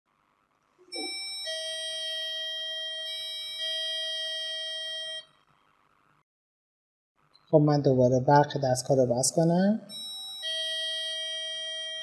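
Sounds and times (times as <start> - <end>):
electronic doorbell chime: 0.9 - 5.3, 9.9 - 12.0.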